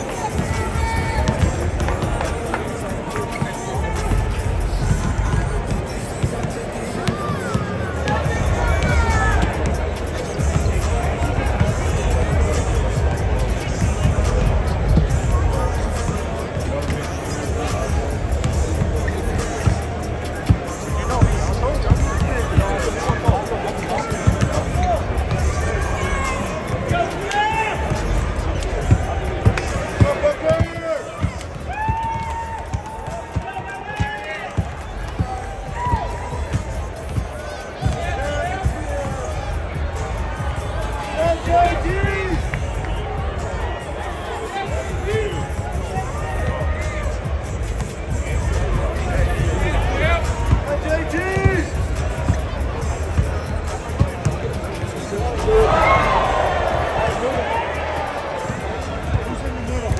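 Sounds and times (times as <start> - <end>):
arena music: 0.0 - 59.9
crowd chatter: 0.0 - 59.9
basketballs bouncing on wooden court: 0.2 - 2.6, 17.6 - 25.6, 27.8 - 39.2.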